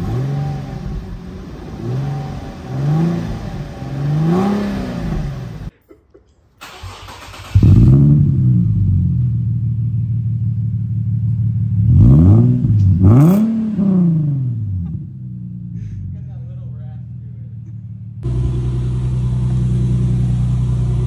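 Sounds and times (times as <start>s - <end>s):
car engine idling: 0.0s - 5.7s, 6.6s - 11.9s, 13.0s - 21.0s
car engine revving: 0.0s - 5.7s, 6.6s - 21.0s.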